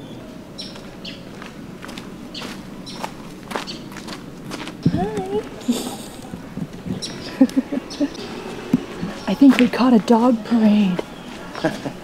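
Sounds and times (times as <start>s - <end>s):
low outdoor hum: 0.0s - 12.0s
footsteps on sandy dirt: 0.7s - 11.9s.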